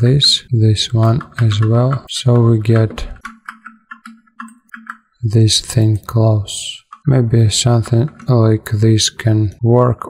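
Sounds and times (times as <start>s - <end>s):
mouse and keyboard clicking: 1.0s - 5.1s.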